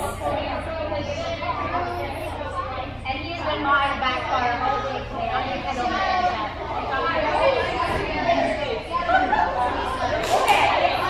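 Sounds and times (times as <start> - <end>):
chatter of many voices: 0.0 - 11.0.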